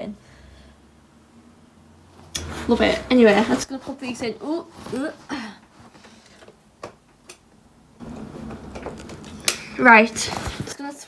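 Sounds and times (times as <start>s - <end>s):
rustling near microphone: 2.1s - 6.6s, 8.0s - 10.8s.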